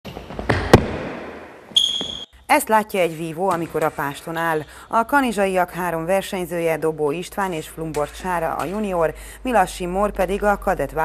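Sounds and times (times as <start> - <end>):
sharp knocks echoing in hall: 0.1 - 2.2
high steady beep: 1.8 - 2.4.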